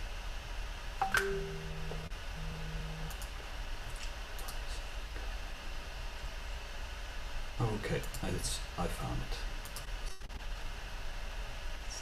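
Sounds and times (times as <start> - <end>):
electronic notification chime: 1.0 - 2.1
click: 3.1 - 3.3, 8.0 - 8.3, 9.6 - 10.2.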